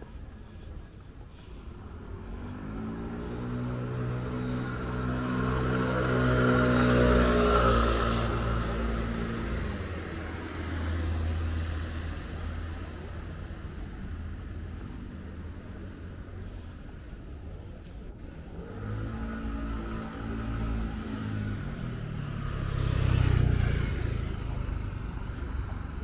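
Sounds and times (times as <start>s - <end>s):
tyre noise on road: 0.0s - 26.0s
quieter vehicle passing: 0.1s - 26.0s
car engine passing: 1.7s - 13.0s, 18.3s - 26.0s.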